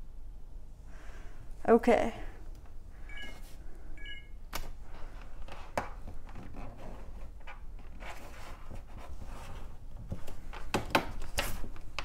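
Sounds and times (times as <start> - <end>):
high-pitched chirp tone: 3.1 - 3.3, 4.0 - 4.4.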